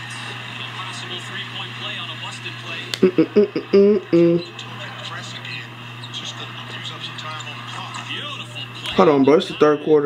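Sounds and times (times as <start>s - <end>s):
steady low hum: 0.0s - 10.0s
tv commentator talking: 0.0s - 10.0s.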